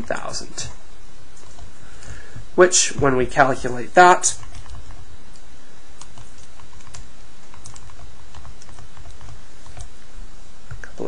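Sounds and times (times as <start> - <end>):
low background hum: 0.0 - 11.0.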